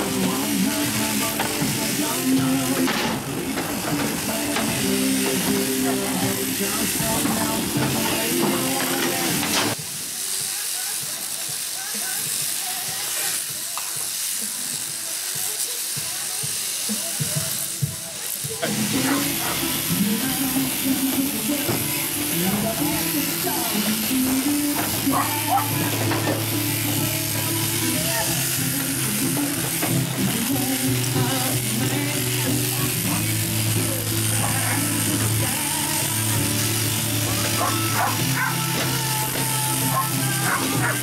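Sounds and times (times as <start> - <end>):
voice or music underneath: 0.0 - 9.8, 17.0 - 41.0
shearing handpiece buzzing: 0.0 - 41.0
dog barking: 19.0 - 19.6, 25.1 - 25.7, 37.6 - 38.6, 39.9 - 41.0.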